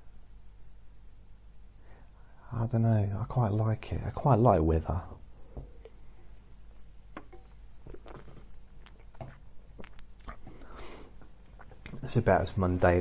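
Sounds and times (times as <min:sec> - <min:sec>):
low steady hum: 0:00.0 - 0:13.0
mouth noises: 0:07.8 - 0:12.1.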